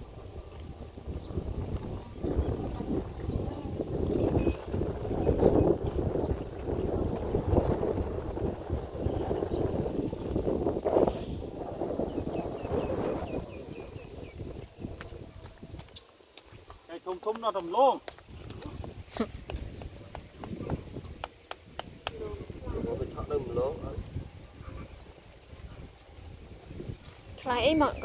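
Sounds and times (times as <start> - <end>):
wind gusting on microphone: 0.0 - 28.0.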